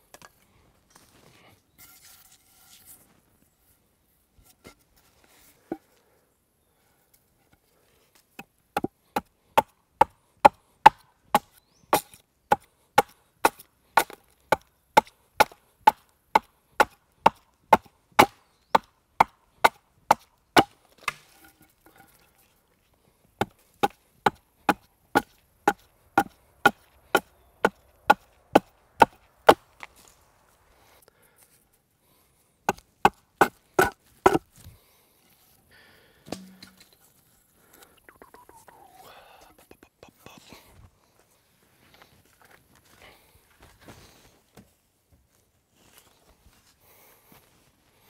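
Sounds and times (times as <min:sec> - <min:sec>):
axe chopping wooden pole: 0:08.4 - 0:21.6, 0:23.4 - 0:29.6, 0:32.7 - 0:34.5, 0:36.3 - 0:36.9.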